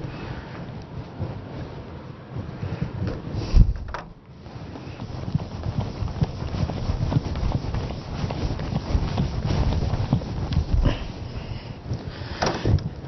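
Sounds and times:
eraser rubbing on whiteboard: 0:04.4 - 0:11.4.

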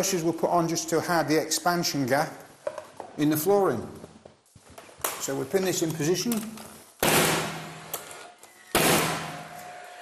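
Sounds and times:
nail gun firing: 0:07.0 - 0:09.5.

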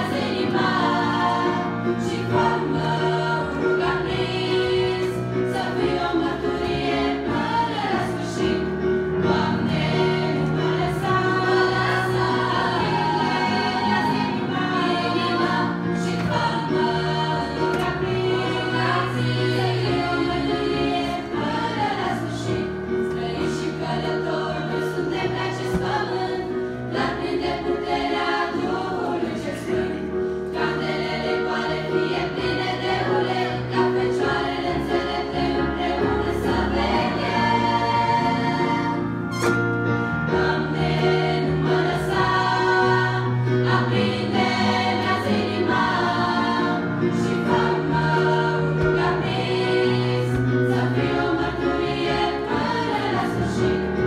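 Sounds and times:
girls' choir singing: 0:00.0 - 0:39.7, 0:40.3 - 0:54.0.

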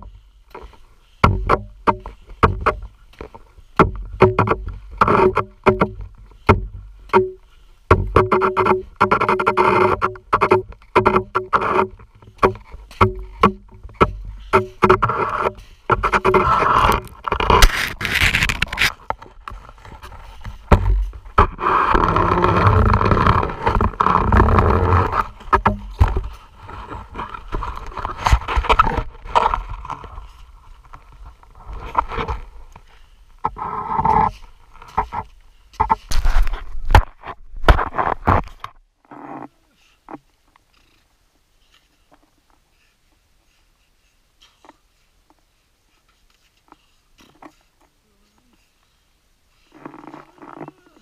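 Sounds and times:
crackling of snow and gloves: 0:00.0 - 0:42.9, 0:44.4 - 0:51.0
knocks of ski gear: 0:00.6 - 0:21.6
skis scraping on ice: 0:14.6 - 0:32.8.

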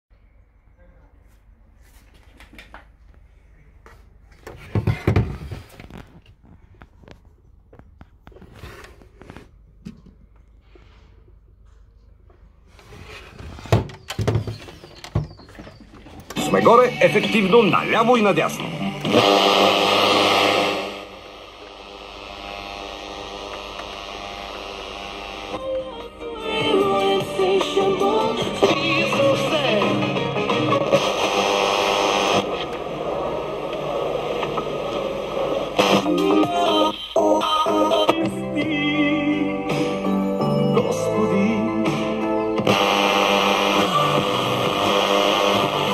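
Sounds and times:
radio being tuned: 0:04.6 - 0:09.5, 0:14.7 - 0:38.2, 0:42.6 - 0:45.9
music from radio station: 0:15.7 - 0:45.9
hissy radio reception: 0:16.2 - 0:38.1, 0:42.7 - 0:45.9.

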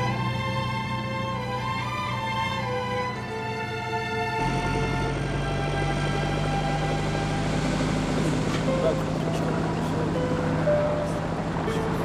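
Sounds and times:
motorboat engine drone: 0:00.0 - 0:12.0
orchestral music: 0:00.0 - 0:12.0
water wash noise: 0:04.4 - 0:12.0.

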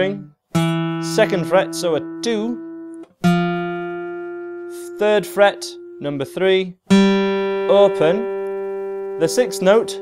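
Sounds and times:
acoustic guitar note ringing: 0:00.5 - 0:10.0.

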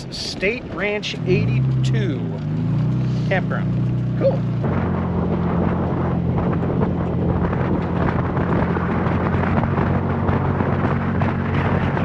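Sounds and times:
vehicle engine running: 0:00.0 - 0:12.0
wind hitting microphone: 0:00.0 - 0:12.0.

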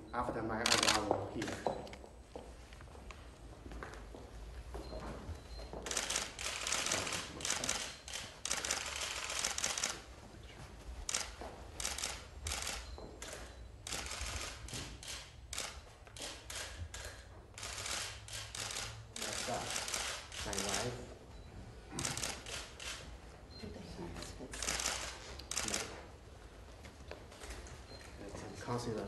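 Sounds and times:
camera shutters clicking: 0:00.6 - 0:02.0, 0:05.8 - 0:10.1, 0:11.1 - 0:21.0, 0:22.0 - 0:23.0, 0:24.5 - 0:26.0.

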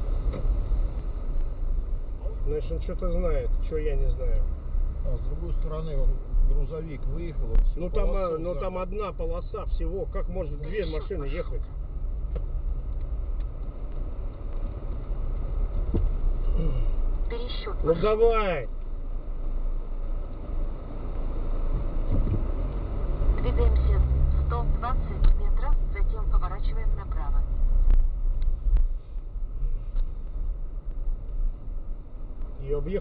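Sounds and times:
car engine and tyre rumble: 0:00.0 - 0:33.0.

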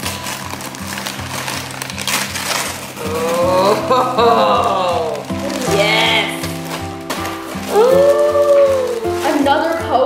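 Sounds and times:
background music with steady beat: 0:00.0 - 0:10.0
wrapping paper crinkling and tearing: 0:00.0 - 0:10.0.

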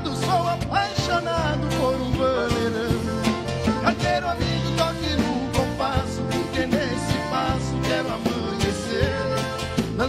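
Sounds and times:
accordion melody: 0:00.0 - 0:10.0
electric bass: 0:00.0 - 0:10.0
steady drum beat: 0:00.0 - 0:10.0.

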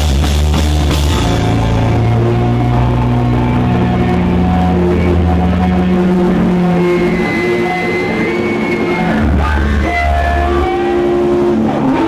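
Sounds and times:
drums and cymbals: 0:00.0 - 0:03.6
deep bass note: 0:00.0 - 0:11.9
distorted electric guitars: 0:00.0 - 0:12.0.

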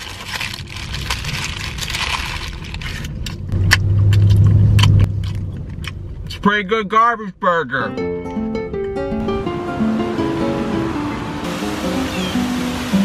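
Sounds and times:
paper wrapper crinkling: 0:00.0 - 0:03.5.

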